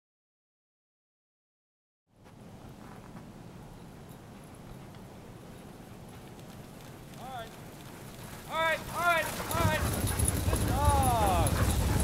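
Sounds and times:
patter of dog paws on snow: 2.2s - 12.0s
sled rumbling: 2.8s - 12.0s.

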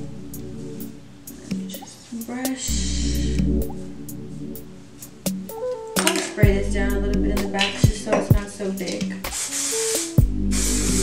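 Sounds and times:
background music with steady beat: 0.0s - 11.0s
aerosol hairspray hissing: 9.2s - 11.0s.

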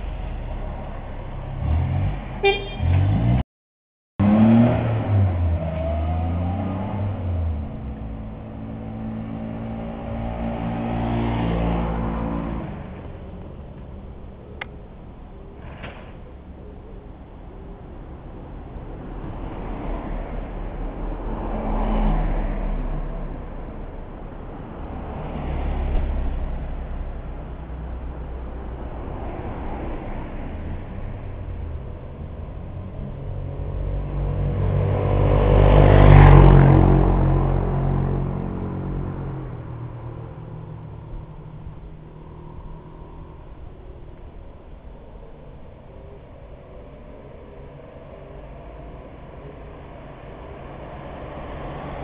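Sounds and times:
cars passing close by: 0.0s - 3.4s, 4.2s - 52.0s.

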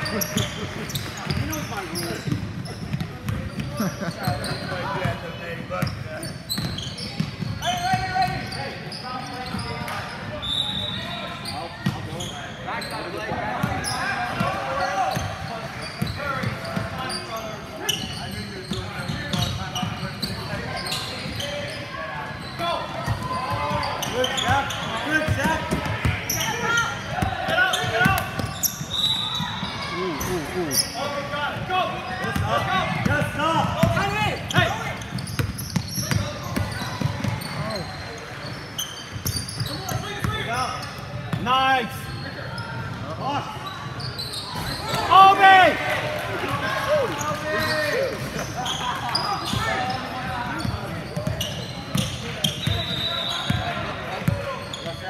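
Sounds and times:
basketballs bouncing on hardwood court: 0.1s - 5.2s, 5.8s - 8.6s, 11.8s - 12.2s, 23.0s - 26.4s, 32.2s - 38.0s, 50.5s - 55.0s.

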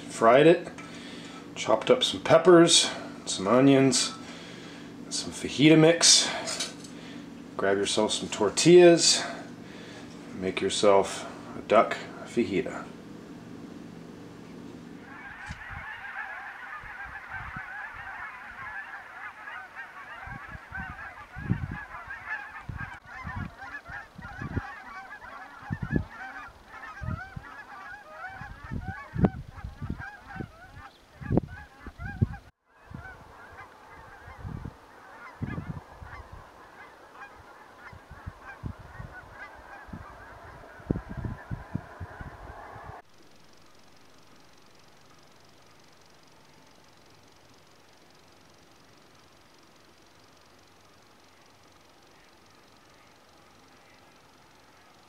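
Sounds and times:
flock of geese honking: 0.3s - 12.9s, 15.0s - 43.0s, 49.2s - 55.0s.

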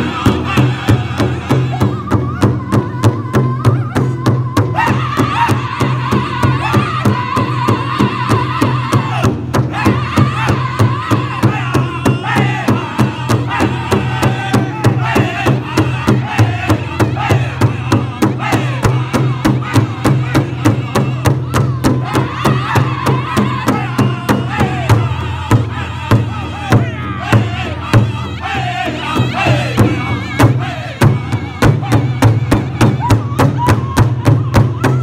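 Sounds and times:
group singing in high unison: 0.0s - 35.0s
large hide drum beat: 0.0s - 35.0s.

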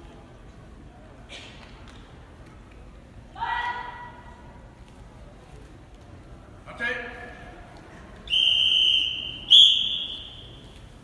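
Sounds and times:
referee's whistle blasts: 8.3s - 10.6s.

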